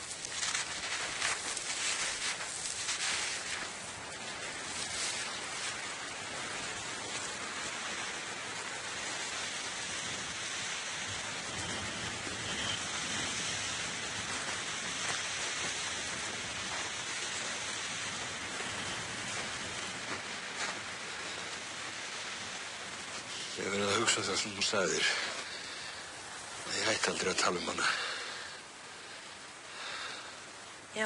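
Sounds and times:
steady outdoor hiss: 0.0 - 31.0.

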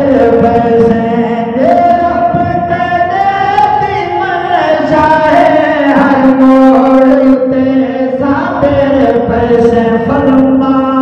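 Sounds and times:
men chanting into microphones: 0.0 - 11.0.

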